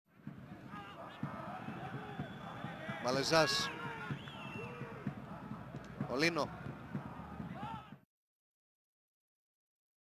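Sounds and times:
stadium crowd murmur: 0:00.2 - 0:08.0
shouts from the crowd: 0:00.5 - 0:05.1, 0:07.3 - 0:08.0.

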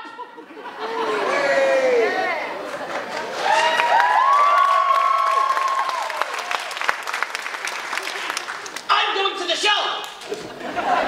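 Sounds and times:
people whooping: 0:01.0 - 0:02.5, 0:03.4 - 0:06.9
audience clapping: 0:02.6 - 0:09.2, 0:09.9 - 0:10.4.

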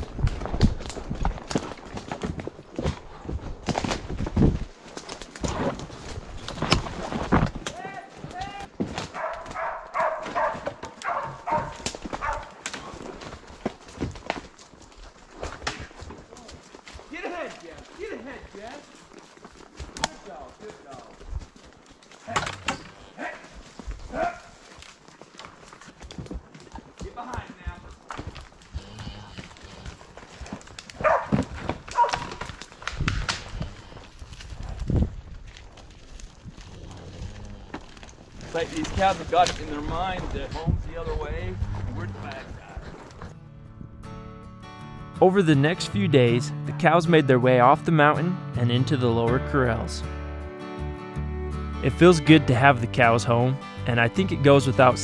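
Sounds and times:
mule hooves stepping through brush: 0:00.0 - 0:44.0
sharp knocks and cracks: 0:00.1 - 0:17.0, 0:30.3 - 0:33.7.

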